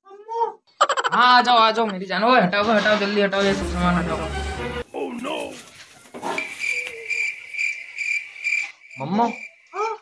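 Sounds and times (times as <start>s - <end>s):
cricket chirping: 6.3s - 10.0s.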